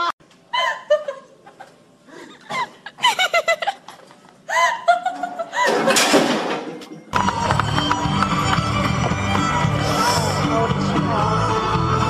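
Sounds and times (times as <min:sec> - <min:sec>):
people laughing: 0:00.6 - 0:06.1.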